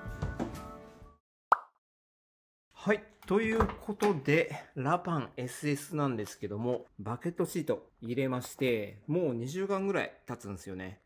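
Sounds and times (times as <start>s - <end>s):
background music: 0.0s - 1.2s.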